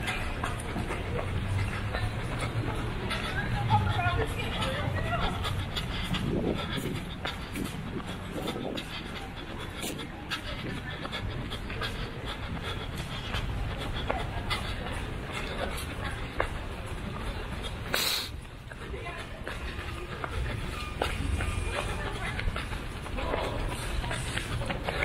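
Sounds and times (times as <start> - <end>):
runner breathing hard: 0.0 - 25.0.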